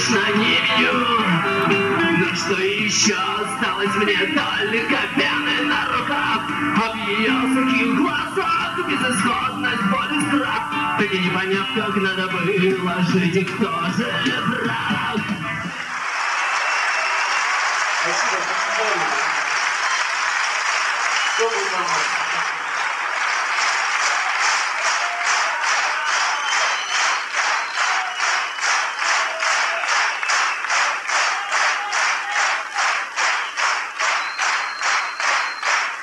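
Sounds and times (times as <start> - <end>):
strummed guitar: 0.0 - 15.7
live rock band playing: 0.0 - 15.8
audience applauding: 14.2 - 36.0.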